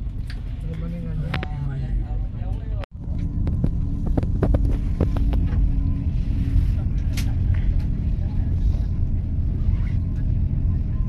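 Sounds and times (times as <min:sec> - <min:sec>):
train rumbling inside carriage: 0:00.0 - 0:11.0.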